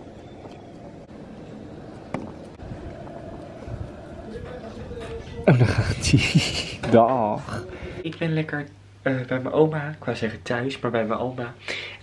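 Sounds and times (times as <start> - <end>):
low outdoor rumble: 0.0 - 9.5
faint hiss: 7.6 - 12.0.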